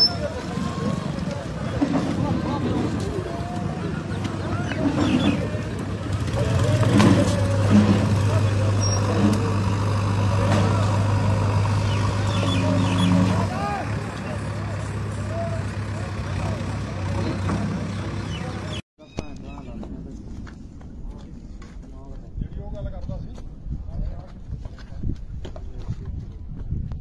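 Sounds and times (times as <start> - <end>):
vehicle engine droning: 0.0 - 18.8.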